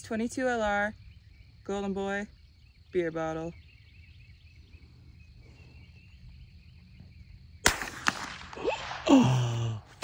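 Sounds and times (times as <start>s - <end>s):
insect chirring: 0.0s - 9.6s
rifle shot crack: 7.6s - 9.2s.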